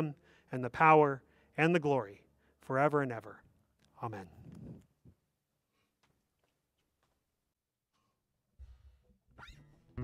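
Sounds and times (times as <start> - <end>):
finger squeaking on guitar string: 9.3 - 10.0.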